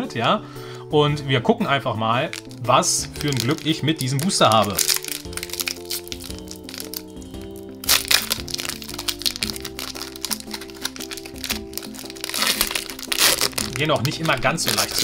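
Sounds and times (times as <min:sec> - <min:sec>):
background music: 0:00.0 - 0:15.0
foil wrapper crinkling: 0:02.3 - 0:15.0.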